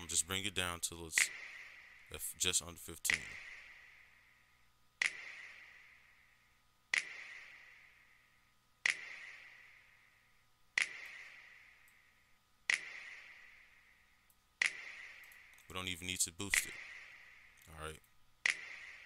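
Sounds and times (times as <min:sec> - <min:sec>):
finger snap with reverb: 0:01.2 - 0:02.0, 0:05.0 - 0:06.1, 0:06.9 - 0:08.0, 0:08.8 - 0:10.0, 0:10.8 - 0:12.0, 0:12.7 - 0:13.7, 0:14.6 - 0:15.7, 0:18.4 - 0:19.0.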